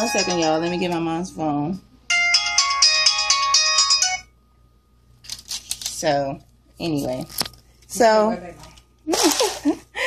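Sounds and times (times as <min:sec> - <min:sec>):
phone ringtone electronic melody: 0:00.0 - 0:01.3, 0:02.1 - 0:04.4.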